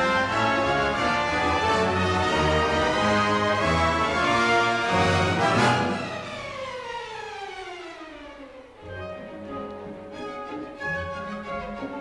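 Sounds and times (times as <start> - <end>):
symphony orchestra playing: 0.0 - 12.0.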